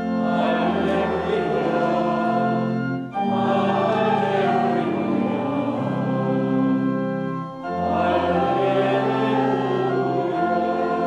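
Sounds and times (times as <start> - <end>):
church organ chords: 0.0 - 11.0
congregation singing: 0.0 - 11.0.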